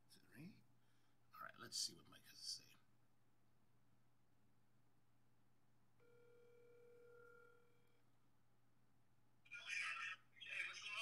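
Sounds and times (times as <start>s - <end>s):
faint telephone ringback tone: 6.0s - 8.0s.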